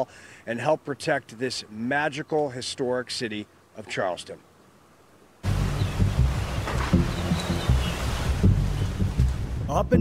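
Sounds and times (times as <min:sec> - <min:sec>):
rushing water: 0:00.0 - 0:09.9
wind buffeting microphone: 0:05.5 - 0:10.0.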